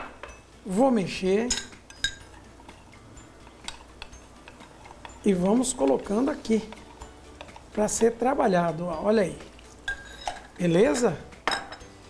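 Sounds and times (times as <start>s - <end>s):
spoon clinking on glass: 1.4s - 8.1s, 9.8s - 11.9s
quiet stirring: 2.1s - 8.3s.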